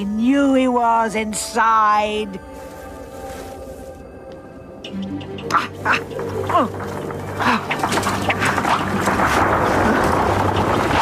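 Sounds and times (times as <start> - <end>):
low music drone: 0.0 - 11.0.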